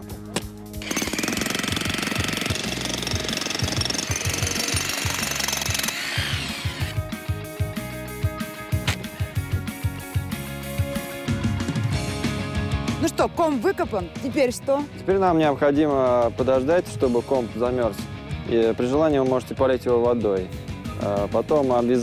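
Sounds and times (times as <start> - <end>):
background music: 0.0 - 22.0
jackhammer breaking ground: 0.8 - 6.9.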